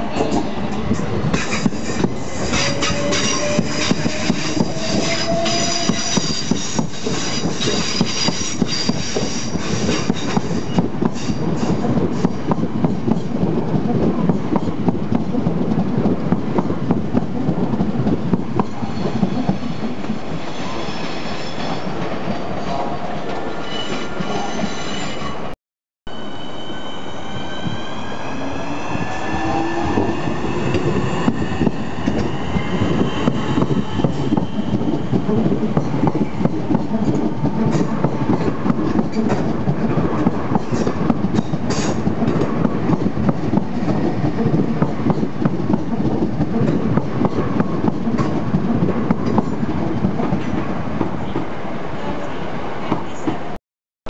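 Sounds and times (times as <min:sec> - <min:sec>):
train wheels clicking over rail joints: 0:00.2 - 0:23.5, 0:29.1 - 0:51.5.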